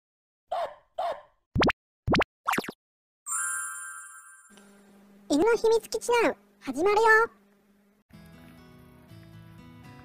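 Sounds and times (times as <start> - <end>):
cartoon plops: 1.6 - 2.8
bright shimmering chime: 3.3 - 4.6.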